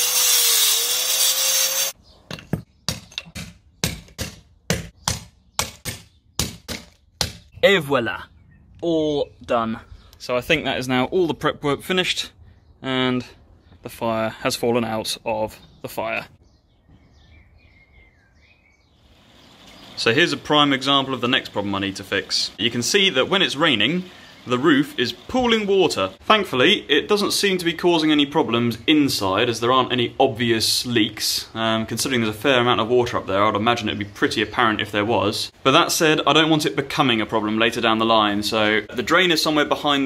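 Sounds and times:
angle grinder cutting concrete: 0:00.0 - 0:02.0
bird chirping: 0:02.0 - 0:04.0, 0:04.9 - 0:06.6, 0:07.3 - 0:10.3, 0:11.2 - 0:25.6.

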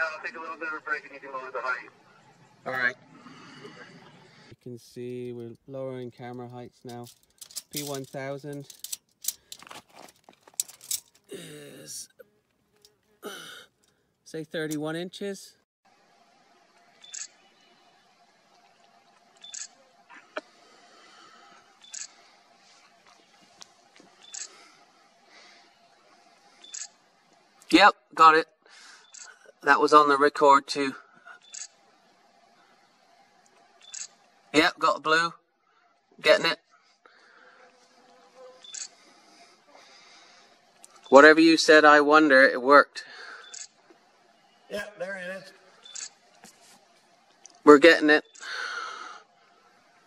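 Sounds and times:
background hiss: 0:00.0 - 0:15.6, 0:36.2 - 0:50.0
faint steady hum: 0:00.0 - 0:50.0
camera shutter clicks: 0:17.0 - 0:17.3, 0:19.4 - 0:19.8, 0:21.8 - 0:22.1, 0:26.6 - 0:26.9, 0:38.6 - 0:39.0
camera beep: 0:17.0 - 0:17.4, 0:19.4 - 0:19.7, 0:21.8 - 0:22.1, 0:24.2 - 0:24.5, 0:26.6 - 0:26.9, 0:29.0 - 0:29.4, 0:31.4 - 0:31.7, 0:33.8 - 0:34.1, 0:38.6 - 0:38.9, 0:43.4 - 0:43.8, 0:45.8 - 0:46.2
camera shutter: 0:17.0 - 0:17.4, 0:19.4 - 0:19.8, 0:21.8 - 0:22.2, 0:24.2 - 0:24.6, 0:26.6 - 0:27.0, 0:31.4 - 0:31.8, 0:33.8 - 0:34.2, 0:38.6 - 0:39.0, 0:43.4 - 0:43.8, 0:45.8 - 0:46.2.

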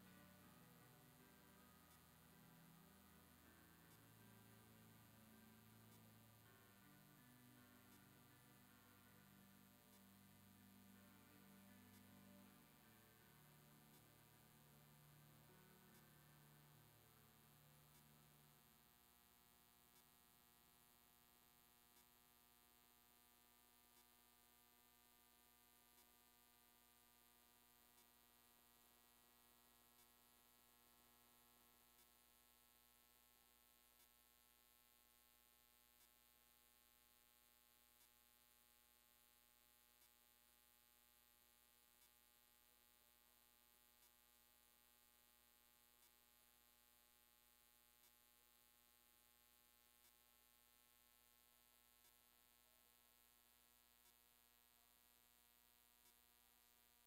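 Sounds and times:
faint electrical hum: 0:00.0 - 0:57.0
soft tick: 0:52.0 - 0:52.2.

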